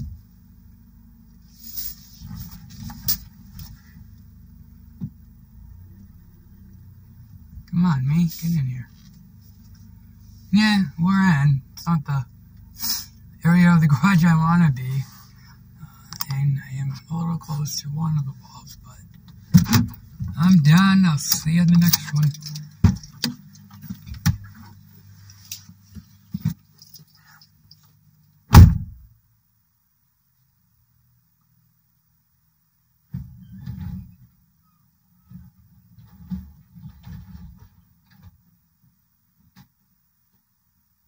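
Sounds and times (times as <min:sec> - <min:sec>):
faint rustles: 0:00.0 - 0:10.8, 0:12.2 - 0:28.5, 0:33.0 - 0:40.6
low hum: 0:00.0 - 0:29.6
car door shutting: 0:19.4 - 0:20.8, 0:28.5 - 0:29.0.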